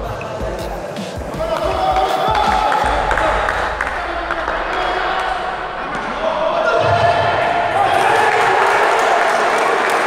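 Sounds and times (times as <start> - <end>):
background music: 0.0 - 7.4
voices in a sports hall: 0.0 - 10.0.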